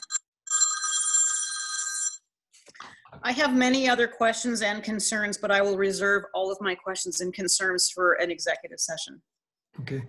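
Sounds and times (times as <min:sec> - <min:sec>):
high electronic ringing tone: 0:00.0 - 0:02.3.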